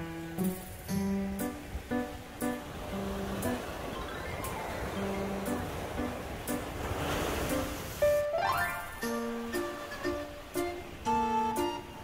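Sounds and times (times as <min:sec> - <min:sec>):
soft plucked-string music: 0:00.0 - 0:12.0
surf washing onto beach: 0:00.2 - 0:12.0.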